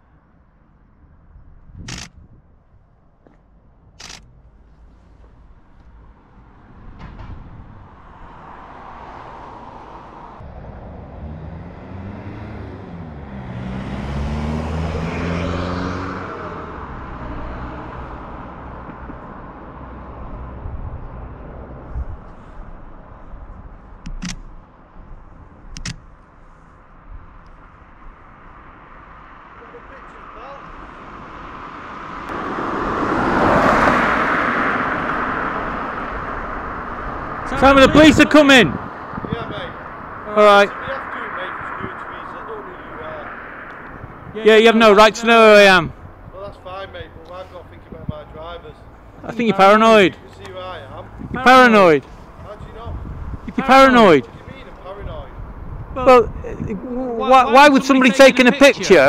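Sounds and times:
outdoor traffic noise: 0.0 - 59.0
vehicle engine passing by: 4.0 - 25.6, 27.4 - 59.0.

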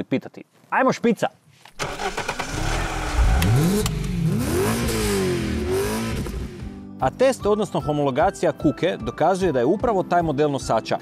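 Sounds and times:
car engine revving: 1.8 - 6.8
sharp clicks: 3.4 - 4.2.

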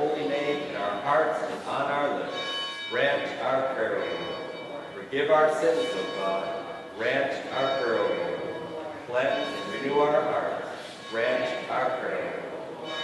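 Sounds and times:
faint high ringing tones: 0.0 - 13.0
man speaking in echoing church: 0.0 - 13.0.

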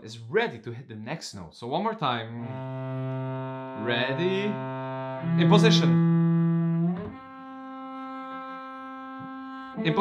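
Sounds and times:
bowed cello notes: 2.3 - 10.0.

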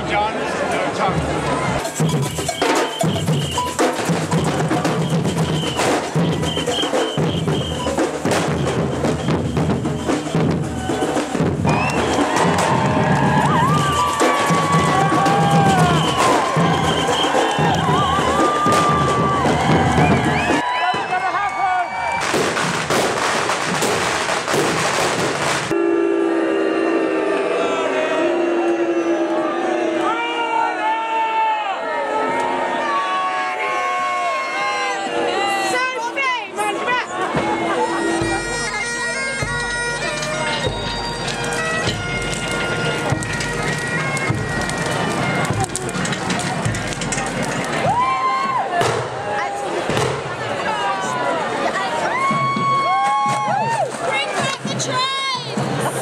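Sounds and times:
crowd voices: 0.0 - 56.0
marching drum band: 1.0 - 21.1, 22.2 - 25.8, 37.3 - 49.2, 52.0 - 56.0.

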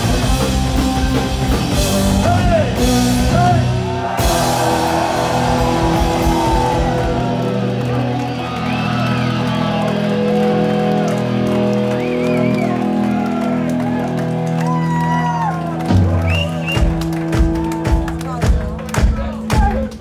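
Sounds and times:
crowd whooping and shouting: 2.2 - 18.2.

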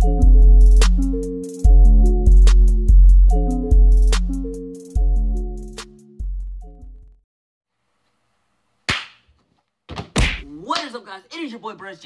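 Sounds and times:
sharp smack: 8.9 - 9.2, 9.9 - 10.5
man speaking: 10.5 - 12.0.

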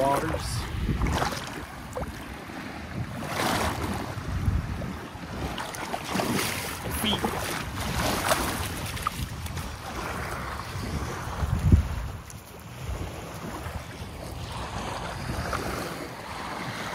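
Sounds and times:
surf washing: 0.0 - 16.9
wind buffeting microphone: 0.0 - 16.9.

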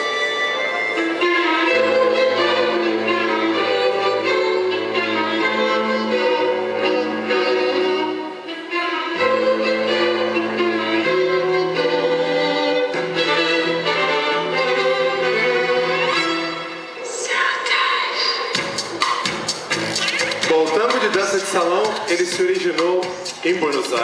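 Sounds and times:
tango music with violins: 0.0 - 17.0.

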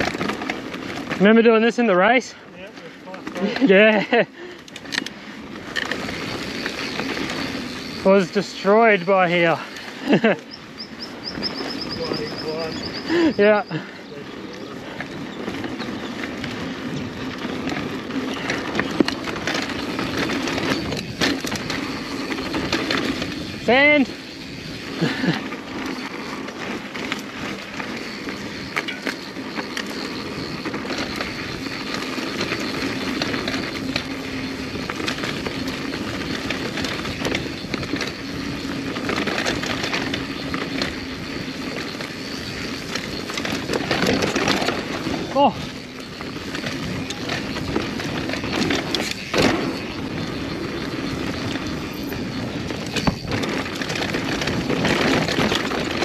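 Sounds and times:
bike rattling over roots: 0.0 - 56.0
bike tyres rolling over dirt: 0.0 - 56.0
bike knocking on hard bumps: 5.6 - 13.9, 14.6 - 56.0.

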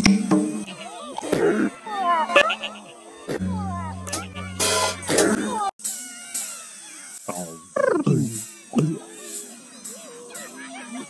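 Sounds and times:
music: 0.0 - 0.7, 3.3 - 6.0
low buzz: 3.3 - 5.2
voice sounds: 3.3 - 5.7, 7.3 - 9.1.

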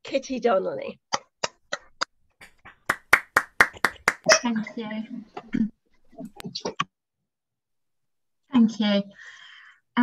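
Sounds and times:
hands clapping: 2.0 - 4.3.

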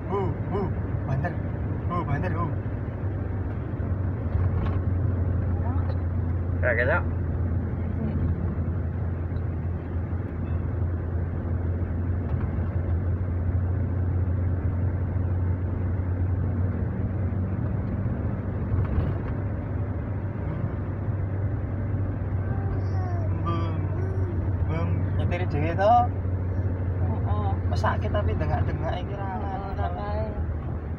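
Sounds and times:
car engine drone: 0.0 - 30.9.

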